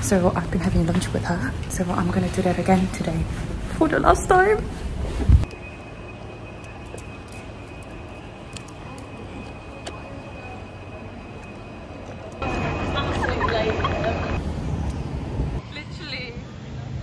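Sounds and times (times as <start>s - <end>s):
low street rumble: 0.0s - 17.0s
voices: 5.7s - 14.4s.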